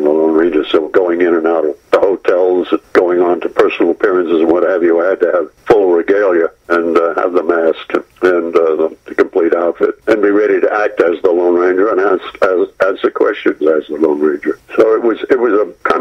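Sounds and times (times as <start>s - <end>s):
man talking over a telephone: 0.0s - 16.0s.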